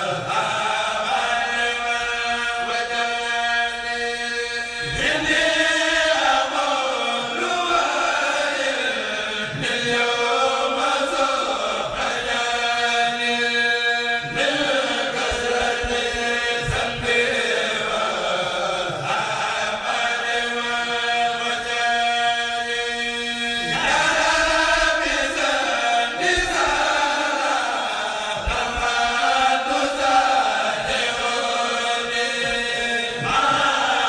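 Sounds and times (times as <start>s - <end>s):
group chanting unaccompanied: 0.0s - 34.0s.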